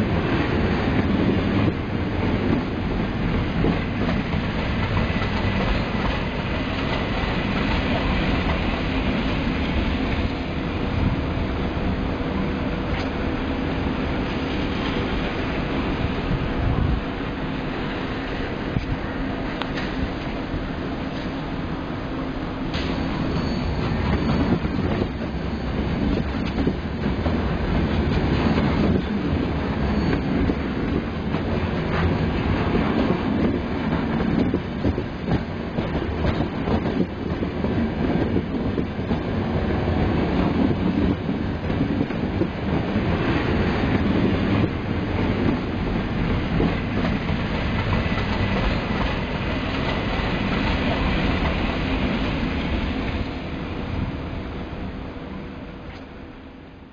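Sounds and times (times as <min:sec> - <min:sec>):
train wheels clattering over rail joints: 0:00.0 - 0:10.4, 0:22.7 - 0:53.0
high wheel squeal: 0:22.8 - 0:25.8, 0:29.8 - 0:30.6.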